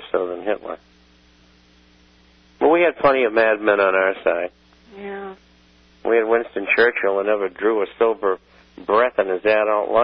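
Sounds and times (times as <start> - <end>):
electrical mains hum: 0.0 - 10.0
person speaking: 2.6 - 5.4.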